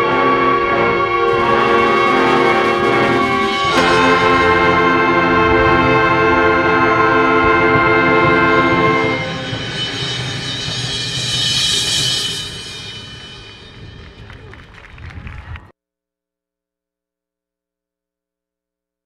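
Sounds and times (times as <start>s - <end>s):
ensemble holding sustained chord: 0.0s - 10.7s.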